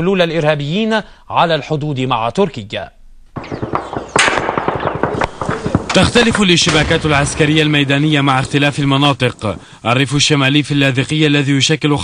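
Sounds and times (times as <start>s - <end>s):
automatic gunfire: 3.4s - 8.1s.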